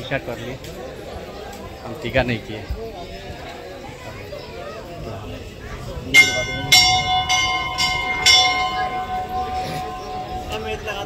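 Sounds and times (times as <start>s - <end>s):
temple bell ringing: 5.8s - 11.0s.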